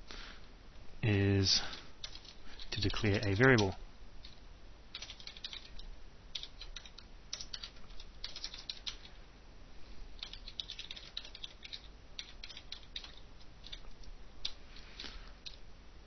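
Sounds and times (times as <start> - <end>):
computer keyboard typing: 1.7 - 9.1, 10.2 - 14.6.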